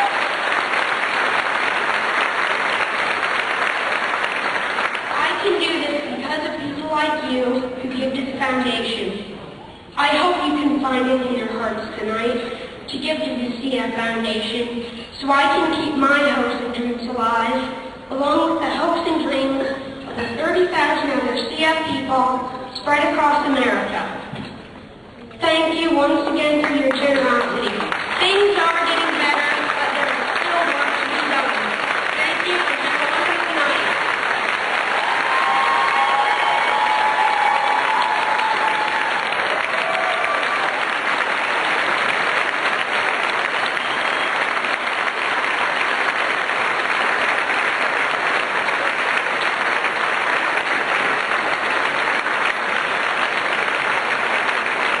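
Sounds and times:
audience applauding: 0:00.0 - 0:05.4, 0:27.6 - 0:55.0.

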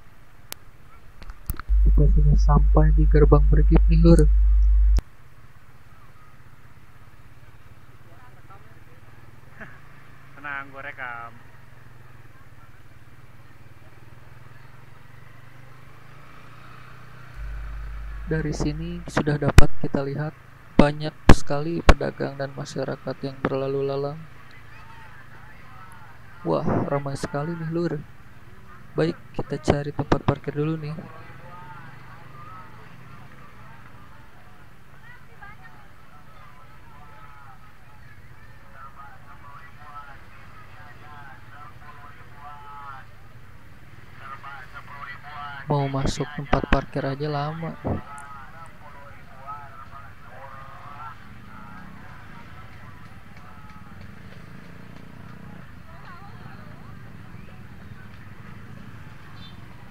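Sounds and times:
vehicle engine hum: 0:01.6 - 0:05.0, 0:14.0 - 0:20.7
crowd chatter: 0:31.0 - 0:43.3.

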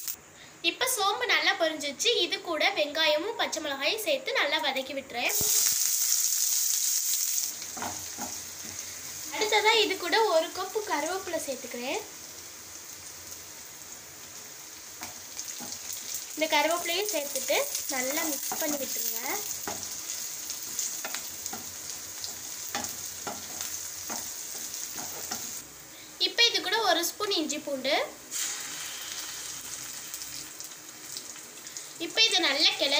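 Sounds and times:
onions sizzling in hot oil: 0:04.4 - 0:32.9.

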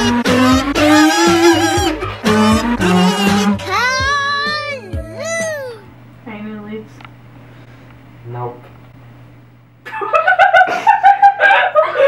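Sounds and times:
child singing buzzy note: 0:03.5 - 0:05.8.

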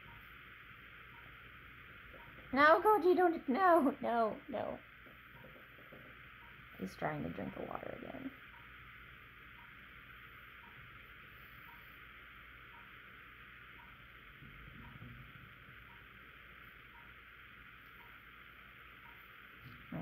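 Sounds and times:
room hiss: 0:00.0 - 0:20.0
faint tick: 0:10.6 - 0:10.8, 0:11.6 - 0:11.9, 0:12.7 - 0:12.9, 0:13.8 - 0:14.0, 0:17.8 - 0:18.2, 0:19.0 - 0:19.2.

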